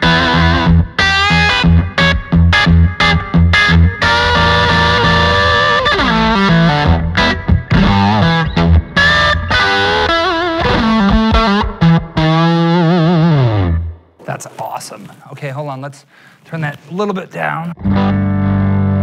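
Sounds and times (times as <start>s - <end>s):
electric guitar lead lines: 0.0s - 14.2s, 17.7s - 19.0s.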